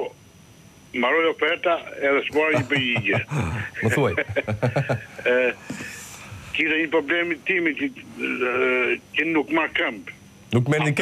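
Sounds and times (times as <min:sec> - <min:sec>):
person speaking over telephone: 0:01.2 - 0:04.2.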